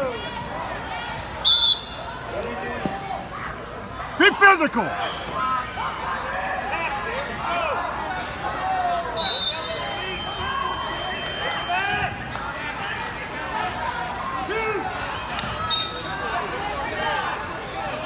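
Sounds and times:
crowd voices in echoing hall: 0.0 - 18.0.

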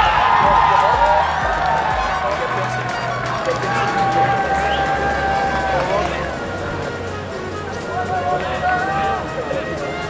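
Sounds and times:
moving bass line: 0.0 - 10.0.

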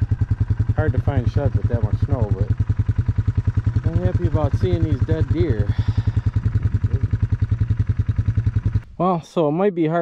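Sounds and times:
atv engine idling: 0.0 - 9.2.

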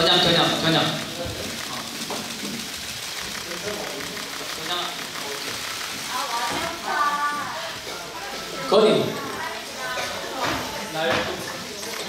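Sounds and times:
indistinct voices in a hall: 0.0 - 12.0.

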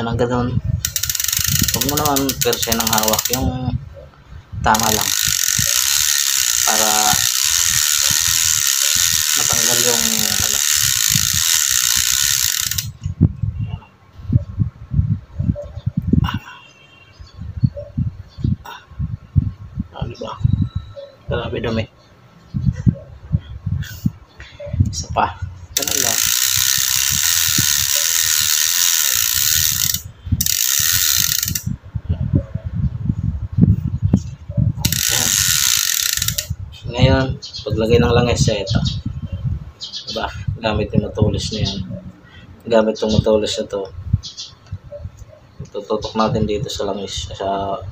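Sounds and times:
bicycle freehub ratcheting: 0.8 - 3.7, 4.6 - 13.1, 25.7 - 31.8, 34.2 - 36.6.

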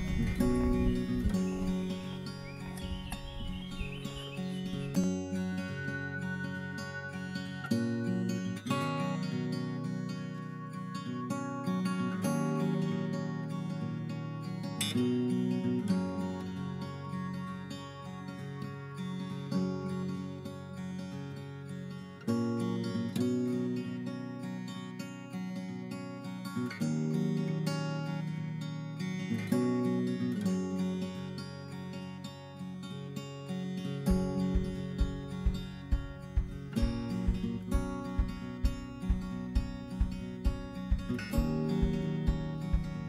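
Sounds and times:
strummed acoustic guitar: 0.0 - 43.0
steady low beat: 34.1 - 43.0.

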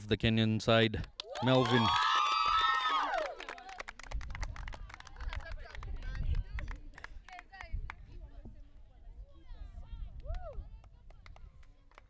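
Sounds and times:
small group clapping: 1.0 - 8.0, 10.2 - 12.0.

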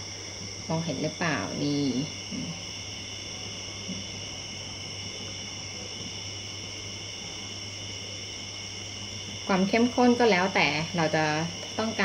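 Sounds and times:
insects chirring: 0.0 - 12.0
steady low hum: 0.0 - 12.0.

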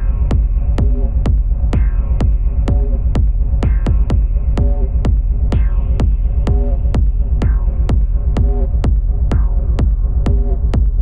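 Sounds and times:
kick drum beat: 0.0 - 11.0
low droning bass: 0.0 - 11.0.

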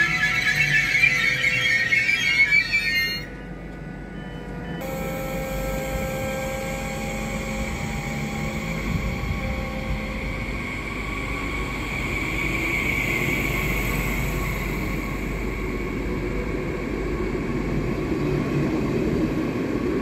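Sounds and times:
faint traction whine: 0.0 - 20.0
train wheels rumbling on rail: 0.0 - 20.0.

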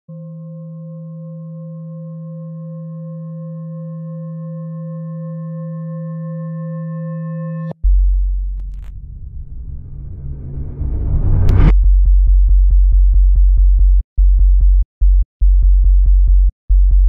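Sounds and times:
low drone tone: 0.1 - 11.7
loud deep bass sound: 7.8 - 17.0.

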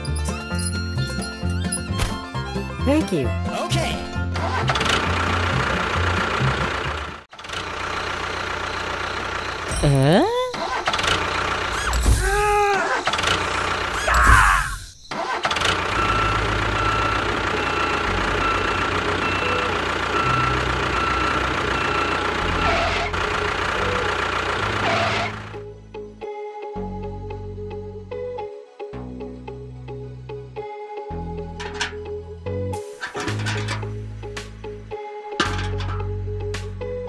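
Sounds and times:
background music: 0.0 - 7.2, 25.5 - 37.0
tractor engine running: 0.0 - 14.4, 15.1 - 25.7, 31.5 - 37.0.

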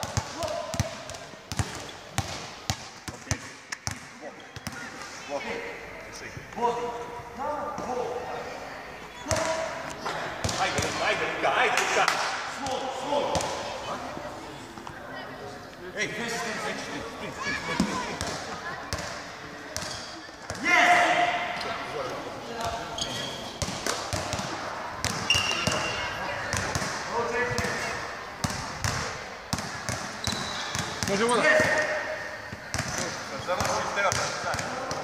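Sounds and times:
basketballs bouncing on court floor: 0.0 - 4.9, 10.4 - 11.0, 12.1 - 13.6, 19.8 - 20.6, 23.6 - 31.9, 32.5 - 35.0
voices of players: 0.0 - 35.0.

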